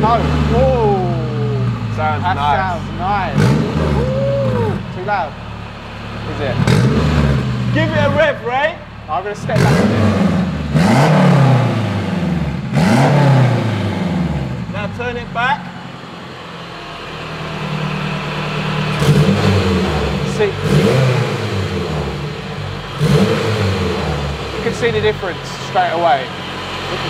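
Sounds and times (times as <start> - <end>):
car engine revving and idling: 0.0 - 27.0.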